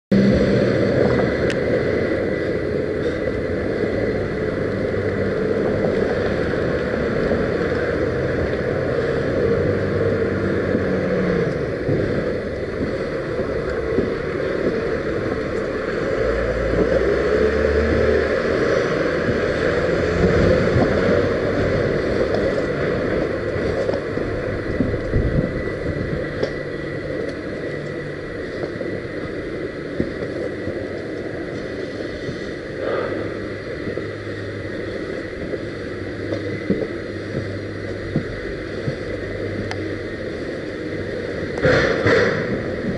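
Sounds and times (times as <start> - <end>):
faint high whine: 0.1 - 42.9
small vehicle running: 0.1 - 42.9
wind on microphone: 0.1 - 42.9.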